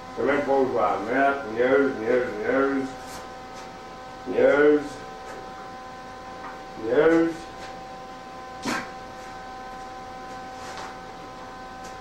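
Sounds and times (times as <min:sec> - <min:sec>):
electrical hum: 0:00.0 - 0:12.0
man talking: 0:00.2 - 0:03.0, 0:04.3 - 0:05.0, 0:06.8 - 0:07.5.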